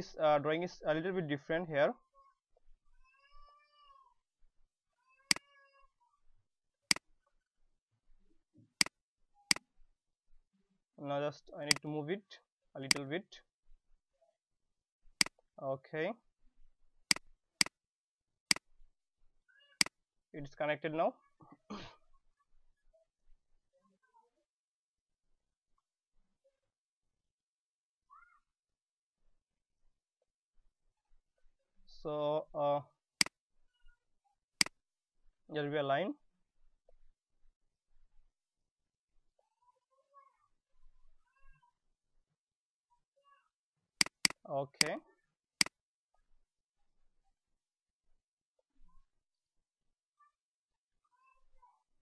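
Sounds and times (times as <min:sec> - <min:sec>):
faint high-pitched cry: 0:02.0 - 0:04.2, 0:23.7 - 0:24.5, 0:28.1 - 0:28.5, 0:39.4 - 0:41.9.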